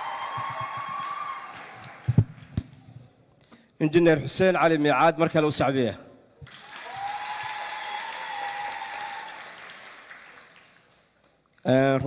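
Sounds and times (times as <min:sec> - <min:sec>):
audience applauding: 0:00.0 - 0:02.5, 0:06.4 - 0:11.1.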